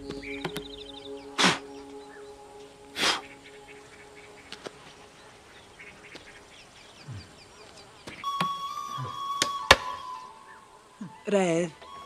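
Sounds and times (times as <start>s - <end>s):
steady high tone: 0.0s - 6.5s, 8.2s - 12.0s
small birds chirping: 0.0s - 12.0s.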